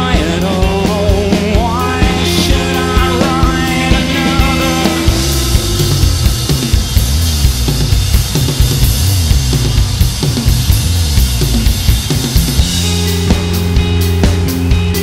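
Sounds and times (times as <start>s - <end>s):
band holding chords: 0.0s - 15.0s
moving bass line: 0.0s - 15.0s
rock band playing: 0.0s - 15.0s
bass drum and snare hits: 0.7s - 15.0s.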